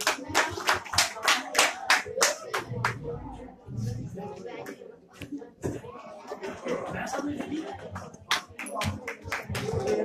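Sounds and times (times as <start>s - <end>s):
hands clapping: 0.0s - 3.0s, 7.3s - 10.0s.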